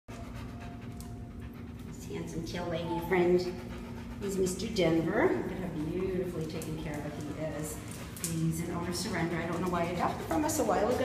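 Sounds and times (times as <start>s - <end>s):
dog panting: 0.1s - 11.0s
steady background hum: 0.1s - 11.0s.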